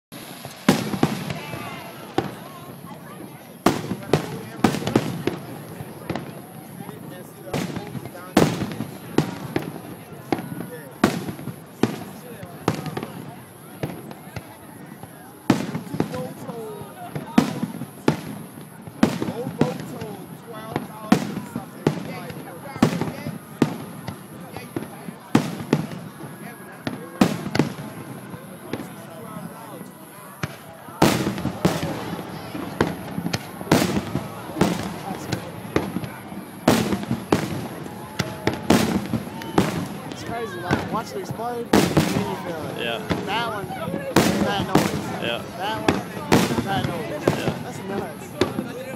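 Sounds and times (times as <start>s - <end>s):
crowd voices: 0.1s - 48.9s
fireworks bursting: 0.1s - 48.9s.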